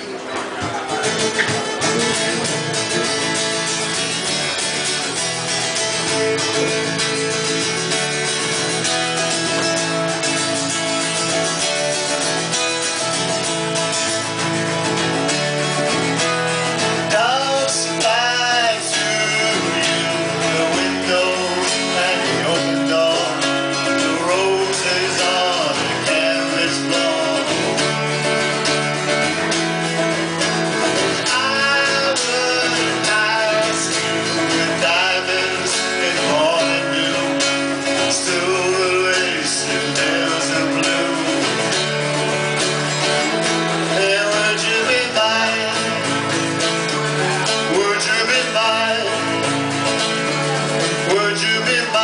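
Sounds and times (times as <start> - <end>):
acoustic guitars strumming: 0.0 - 52.0
man singing: 16.5 - 28.6, 30.4 - 52.0.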